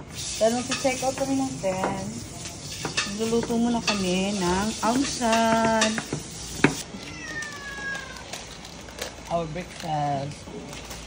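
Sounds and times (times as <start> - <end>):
cat meowing: 6.8 - 8.4.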